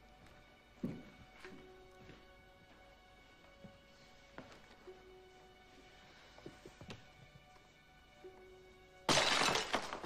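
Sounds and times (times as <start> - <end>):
breaking glass cracks: 9.1 - 10.0
glass shattering: 9.1 - 10.0.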